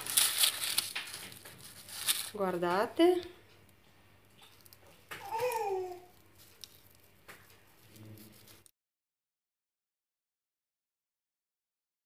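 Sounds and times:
crackle of doughnut torn apart: 0.0 - 2.4, 4.4 - 8.7.

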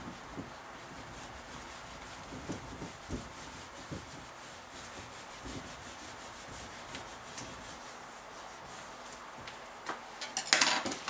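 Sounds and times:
eraser scrubbing whiteboard: 0.0 - 9.4.

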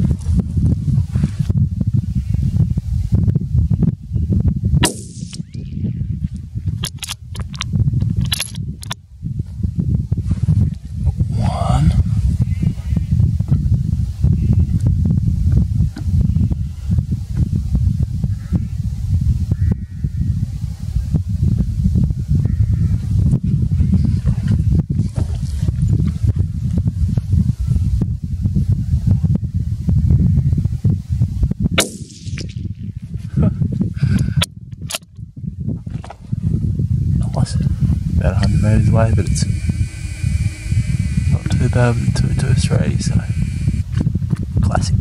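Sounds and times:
wind buffeting microphone: 0.0 - 45.0
sharp clicks or knocks: 6.8 - 9.0.

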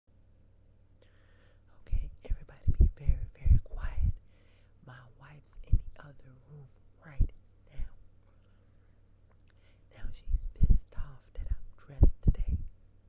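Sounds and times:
woman whispering: 1.7 - 4.2, 4.8 - 8.0, 9.9 - 12.7.

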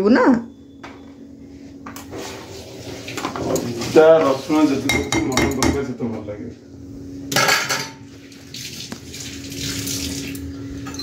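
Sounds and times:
low hum: 0.4 - 5.1
pots and utensils clinking: 3.1 - 5.9, 7.3 - 8.1, 10.3 - 11.0.

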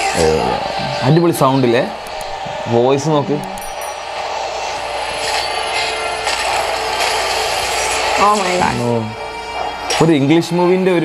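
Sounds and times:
rough sound-design texture: 4.1 - 9.1.

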